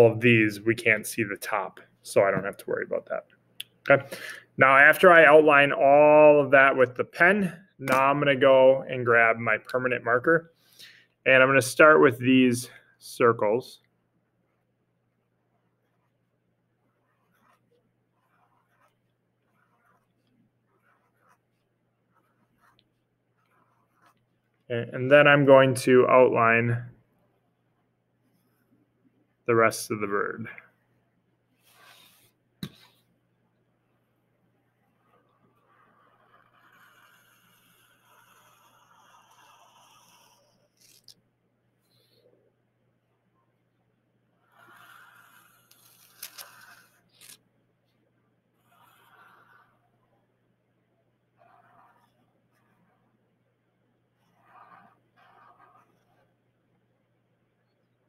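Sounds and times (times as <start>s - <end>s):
marker scratching on paper: 15.2s - 24.6s, 31.6s - 33.1s, 34.8s - 41.2s, 44.4s - 47.4s, 48.6s - 50.0s, 51.4s - 53.2s, 54.2s - 56.4s.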